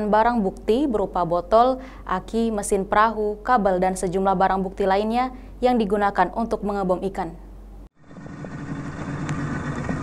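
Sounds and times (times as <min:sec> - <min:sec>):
boat engine running: 0:08.0 - 0:10.0.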